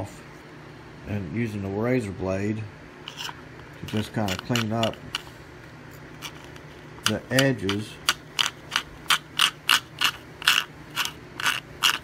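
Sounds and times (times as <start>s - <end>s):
low steady hum: 0.0s - 12.0s
razor blade scraping foam: 3.1s - 5.0s, 8.7s - 12.0s.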